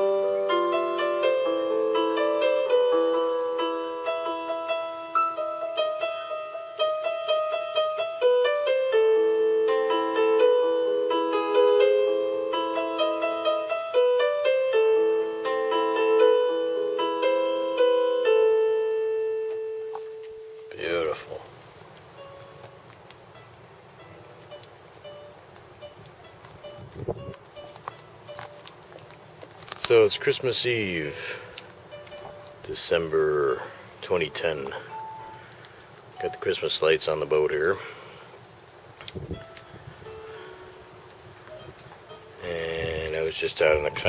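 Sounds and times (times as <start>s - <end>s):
electronic keyboard note: 0.0s - 21.5s, 23.4s - 28.4s, 30.8s - 35.5s, 36.2s - 36.7s, 39.2s - 44.0s
man talking: 20.7s - 21.5s, 29.8s - 31.5s, 32.6s - 34.9s, 36.2s - 37.9s, 42.4s - 44.0s.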